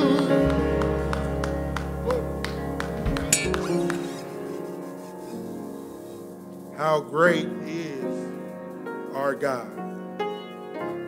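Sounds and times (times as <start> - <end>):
keyboard sustained chord: 0.0 - 9.8.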